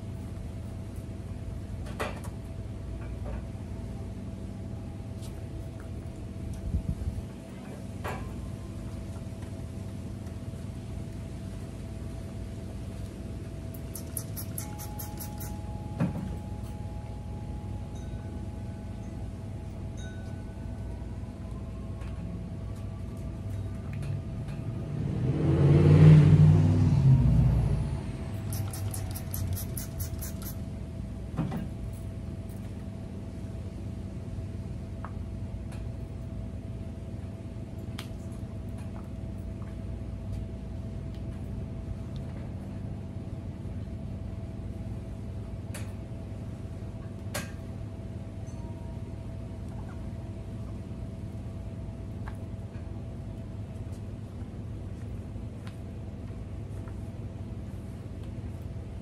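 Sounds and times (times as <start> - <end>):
vehicle engine passing by: 24.7 - 30.6.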